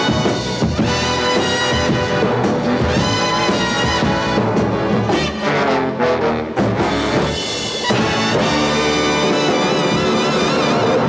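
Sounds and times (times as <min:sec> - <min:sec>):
orchestral show music: 0:00.0 - 0:11.0.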